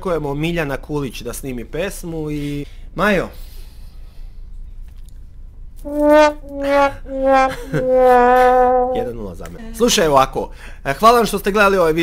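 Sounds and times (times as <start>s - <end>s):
low steady hum: 3.6s - 10.8s
loud held pitched tone: 5.8s - 9.2s.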